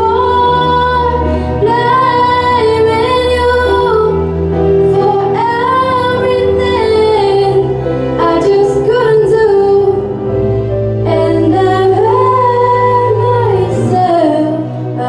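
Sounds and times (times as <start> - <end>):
girl singing ballad: 0.0 - 10.1, 11.0 - 15.0
low backing chords: 0.0 - 15.0.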